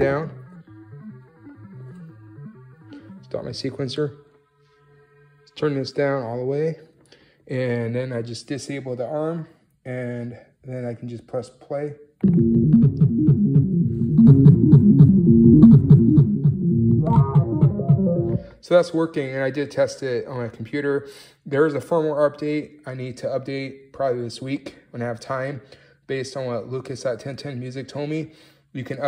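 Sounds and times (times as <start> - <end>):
synthesizer bass sequence: 0.0 - 4.4, 12.2 - 18.6.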